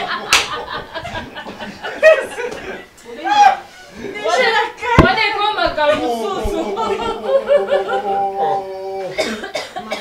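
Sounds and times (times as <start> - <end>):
person coughing: 9.1 - 10.0.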